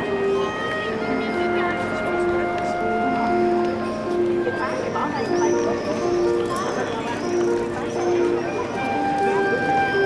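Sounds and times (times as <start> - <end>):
solo clarinet melody: 0.0 - 6.5, 7.5 - 10.0
people talking: 0.0 - 10.0.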